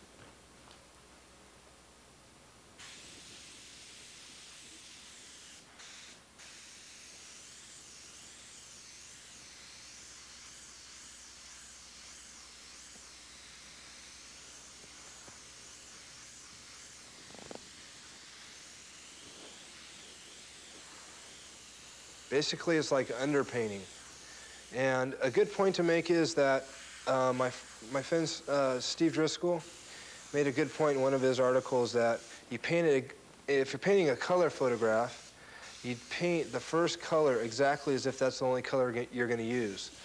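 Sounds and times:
airbrush hissing: 0:02.8 - 0:40.0.

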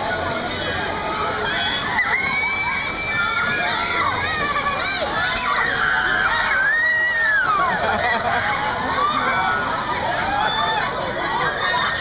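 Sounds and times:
water fountains spraying: 0:00.0 - 0:12.0
riders screaming and shouting: 0:01.4 - 0:08.0.

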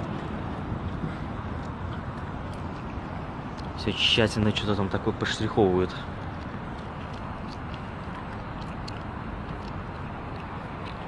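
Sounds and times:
low traffic hum: 0:00.0 - 0:11.0.

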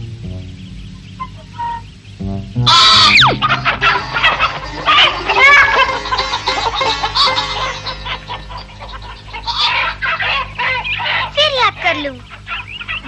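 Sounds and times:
hens squawking and clucking: 0:00.0 - 0:13.0
light background music: 0:00.0 - 0:13.0.

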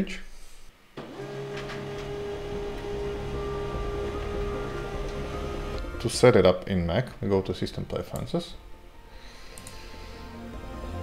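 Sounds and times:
laser printer motor hum: 0:01.0 - 0:06.0
printer high whine: 0:01.0 - 0:06.4.

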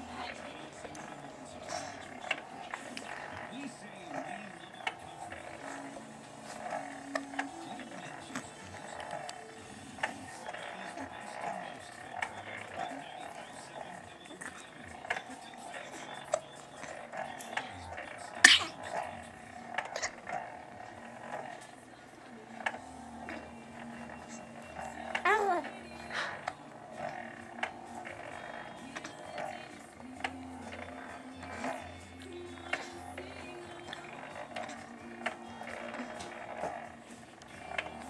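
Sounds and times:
baby cooing: 0:18.4 - 0:18.8, 0:25.2 - 0:25.8.

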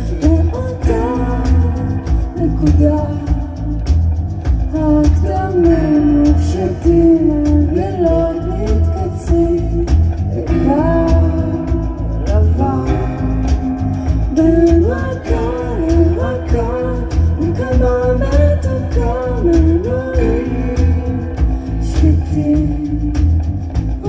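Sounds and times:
electric bass: 0:00.0 - 0:24.0
person singing: 0:00.0 - 0:24.0
piano: 0:00.0 - 0:24.0.

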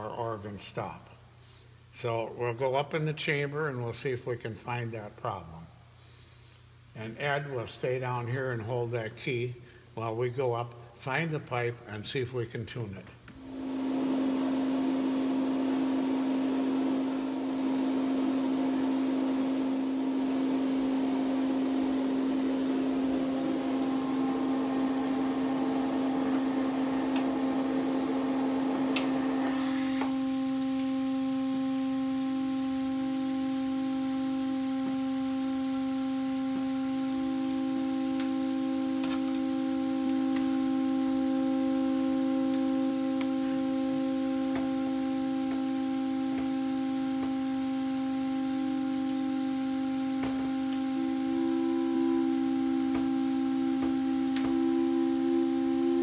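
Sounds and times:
pipe organ held note: 0:13.4 - 0:30.7, 0:37.9 - 0:56.0
higher steady organ note: 0:13.4 - 0:56.0.

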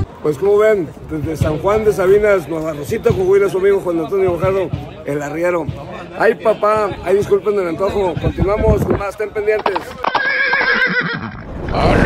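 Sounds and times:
horse whinnying: 0:10.0 - 0:12.0.

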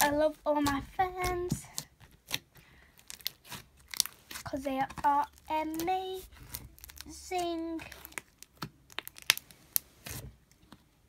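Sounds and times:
slime crackling pops: 0:07.9 - 0:10.2.

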